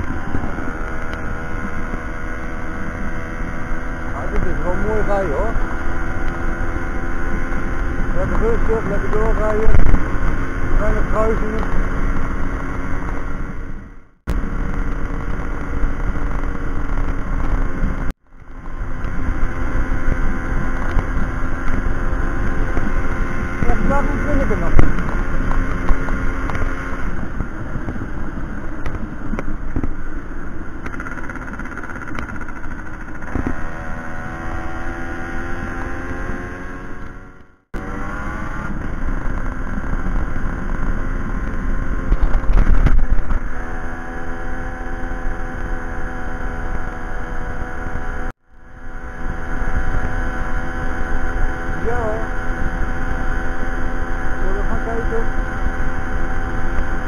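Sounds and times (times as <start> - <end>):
moped two-stroke engine running: 0.0 - 57.0.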